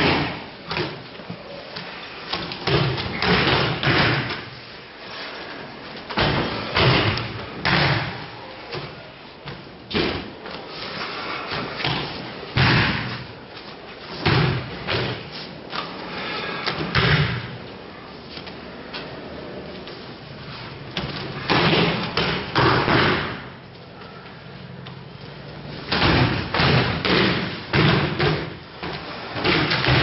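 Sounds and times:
body hitting a padded mat: 25.9s - 30.0s.

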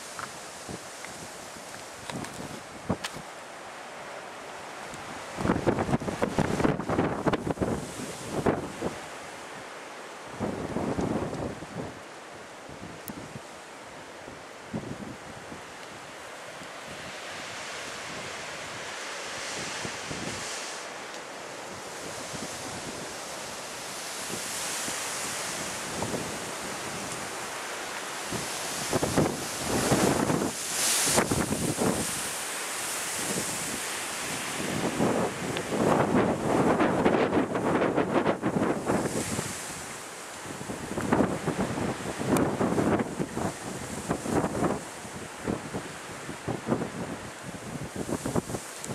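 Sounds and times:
storm wind gusting through trees: 0.0s - 48.9s
wind buffeting microphone: 28.3s - 32.3s, 45.4s - 48.9s.

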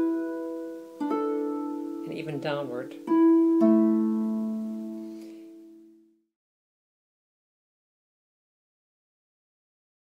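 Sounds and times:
plucked harp strings: 0.0s - 5.9s.

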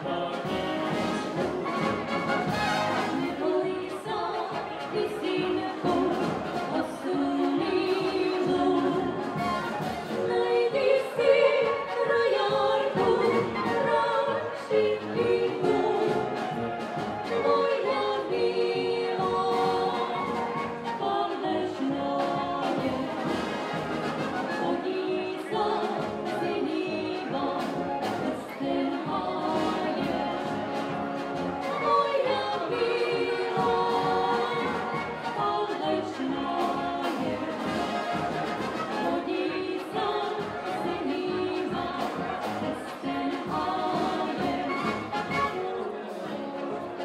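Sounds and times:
brass band playing: 0.0s - 47.0s
choir singing in harmony: 0.0s - 47.0s.

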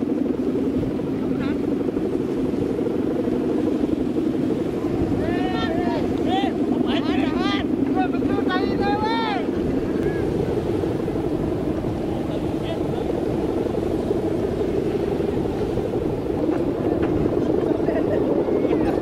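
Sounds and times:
kite bow humming drone: 0.0s - 19.0s
strong wind: 0.0s - 19.0s.

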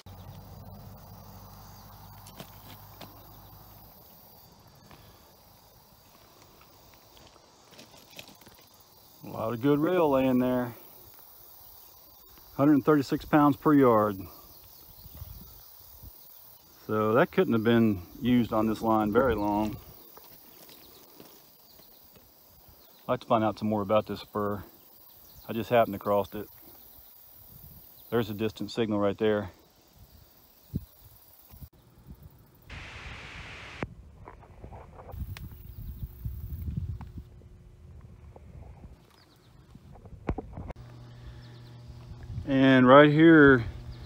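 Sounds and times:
footsteps on ballast stones: 2.2s - 3.4s, 4.8s - 8.8s, 19.5s - 22.3s
light hiss: 32.7s - 33.8s.

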